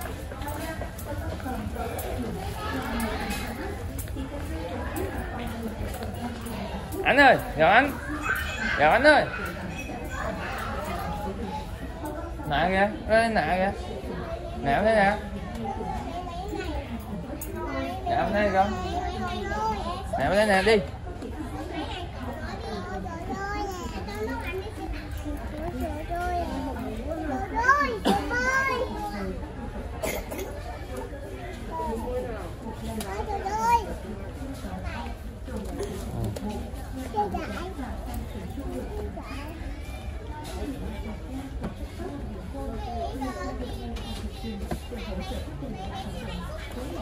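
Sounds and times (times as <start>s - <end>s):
overlapping voices chattering: 0.0s - 20.2s.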